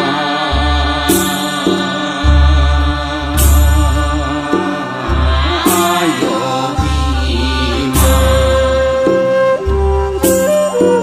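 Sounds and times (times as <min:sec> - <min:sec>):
chant-like devotional singing: 0:00.0 - 0:11.0.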